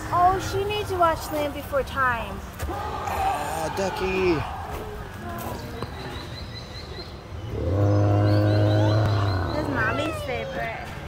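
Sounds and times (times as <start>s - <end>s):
deep recorded animal bellow: 7.5s - 10.3s.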